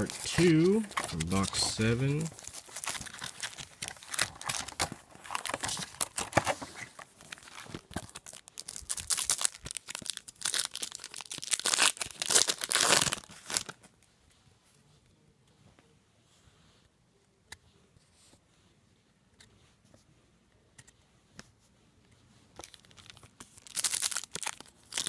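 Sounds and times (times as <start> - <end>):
foil wrappers crinkling and tearing: 0.0 - 13.8, 22.6 - 25.0.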